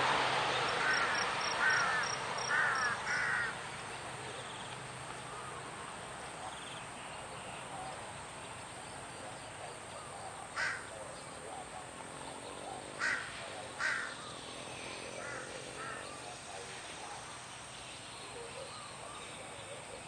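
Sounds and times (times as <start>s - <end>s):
crows cawing: 0.7s - 3.6s, 10.5s - 10.9s, 13.0s - 14.4s, 15.0s - 16.4s.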